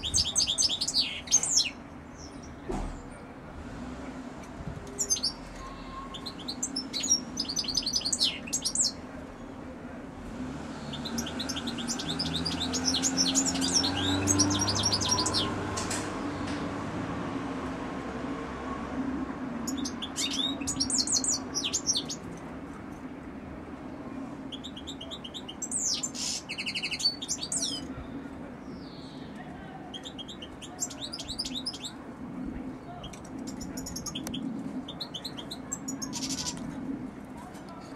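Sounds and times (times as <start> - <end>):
goldfinch twittering song: 0.0 - 2.6, 5.0 - 9.0, 10.8 - 15.6, 19.7 - 22.2, 24.5 - 27.9.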